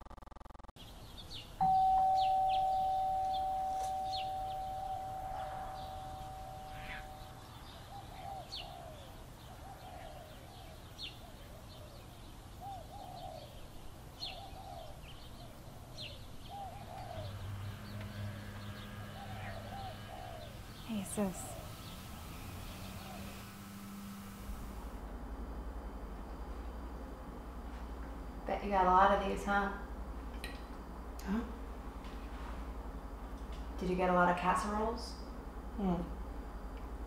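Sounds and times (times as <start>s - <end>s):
low repeated bird call: 0.8s - 23.7s
birds chirping: 0.8s - 24.8s
two-note doorbell chime: 1.6s - 7.2s.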